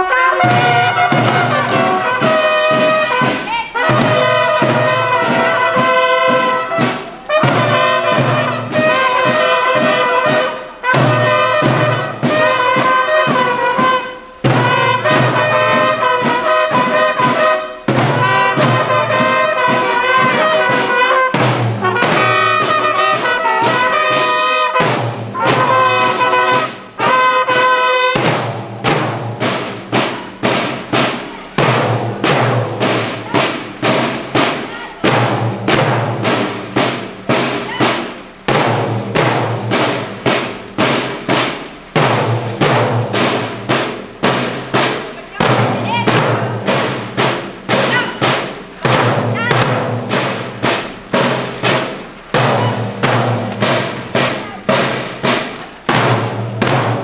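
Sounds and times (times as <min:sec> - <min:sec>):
bugles sounding a call: 0:00.0 - 0:56.8
snare and bass drums marching beat: 0:00.0 - 0:57.0.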